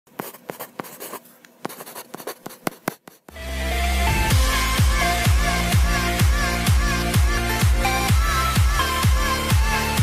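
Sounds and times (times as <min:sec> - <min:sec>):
pen scratching on paper: 0:00.1 - 0:03.4.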